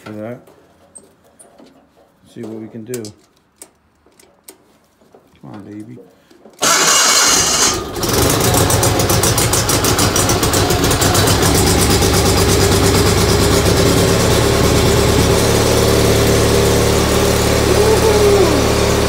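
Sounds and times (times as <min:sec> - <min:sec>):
engine starter cranking: 0:06.6 - 0:16.5
tractor engine running: 0:06.6 - 0:19.0.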